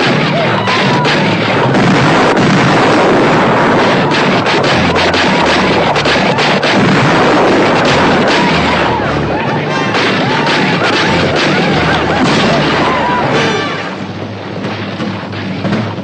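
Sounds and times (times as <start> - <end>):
explosions: 0.0 - 16.0
gunshots: 0.0 - 16.0.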